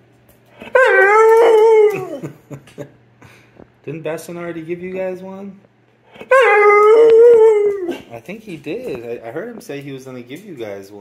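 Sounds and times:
dog howling vocalization: 0.6s - 2.3s, 6.1s - 8.1s.

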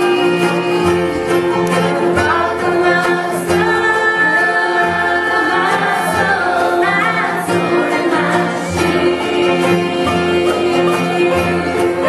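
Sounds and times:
acoustic guitar: 0.0s - 12.0s
harmony voices: 0.0s - 12.0s
plucked upright bass: 0.0s - 12.0s
woman singing lead: 0.0s - 12.0s.

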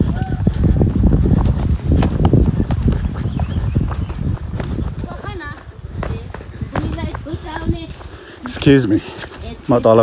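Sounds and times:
footsteps on stone steps: 0.0s - 10.0s.

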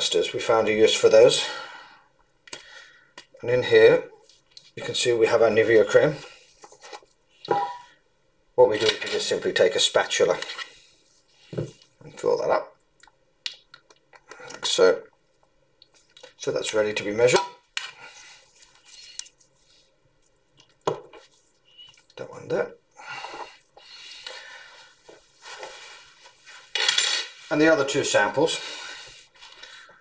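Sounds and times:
rustling and scraping of containers: 6.1s - 8.0s, 23.2s - 28.1s.

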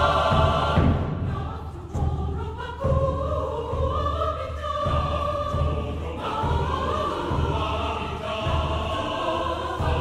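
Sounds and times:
low drum beat: 0.0s - 10.0s
mixed choir singing: 0.0s - 10.0s.

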